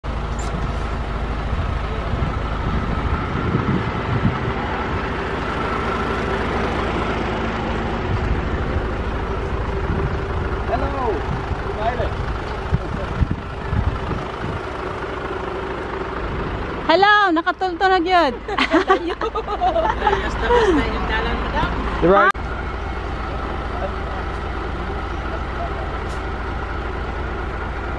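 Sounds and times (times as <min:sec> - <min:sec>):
diesel truck engine idling: 0:00.0 - 0:27.9.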